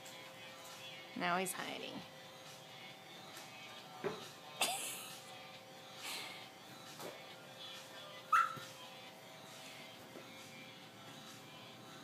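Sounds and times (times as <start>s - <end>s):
dog yipping: 8.3s - 8.7s.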